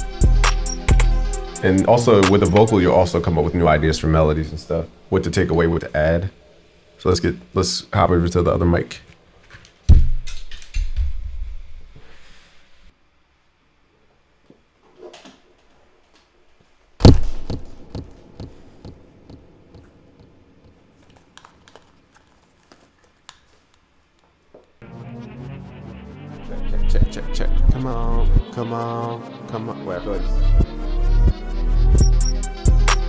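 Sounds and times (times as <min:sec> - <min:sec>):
hip-hop beat: 0:00.0 - 0:03.6, 0:24.8 - 0:33.0.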